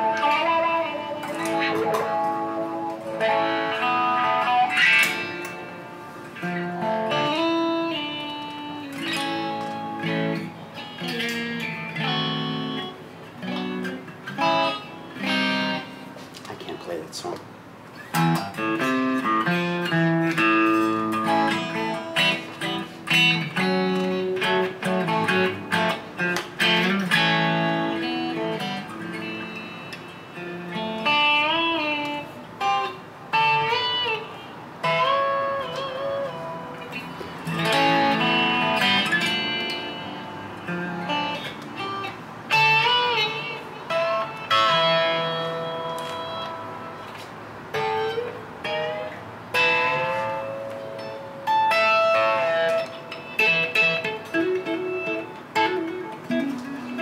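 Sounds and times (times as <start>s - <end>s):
electric guitar playing: 0.0s - 57.0s.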